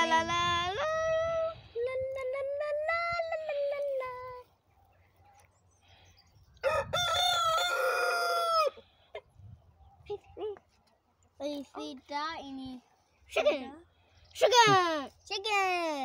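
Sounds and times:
rooster crowing: 0:06.6 - 0:08.9.

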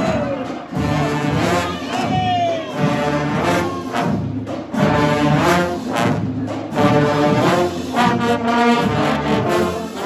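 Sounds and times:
marching brass band playing: 0:00.0 - 0:10.0.

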